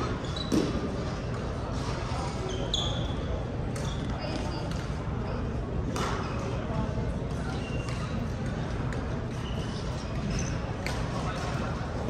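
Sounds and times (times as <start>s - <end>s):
court shoes squeaking: 0.0s - 5.1s, 6.0s - 12.0s
chatter: 0.0s - 12.0s.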